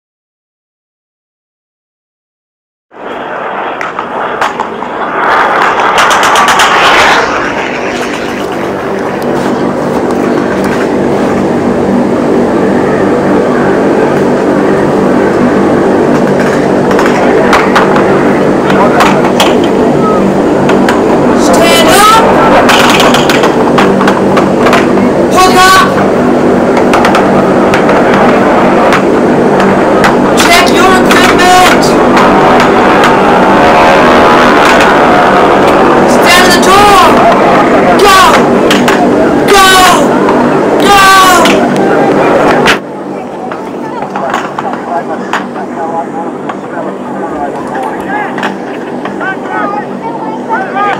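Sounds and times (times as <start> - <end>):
aircraft engines droning: 2.9 - 50.9
people shouting: 16.8 - 23.8, 27.0 - 42.6, 49.1 - 50.9.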